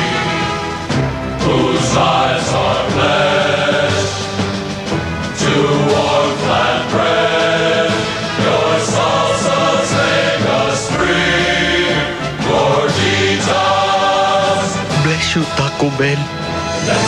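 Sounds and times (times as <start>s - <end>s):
choir singing solemn song: 0.0s - 15.1s, 16.4s - 17.0s.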